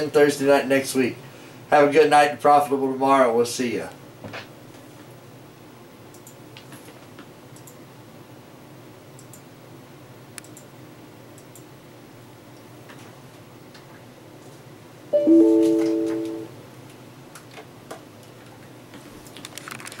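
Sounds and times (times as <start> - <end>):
light clicking: 10.4 - 10.7
low steady hum: 15.0 - 16.7
short chime: 15.2 - 16.5.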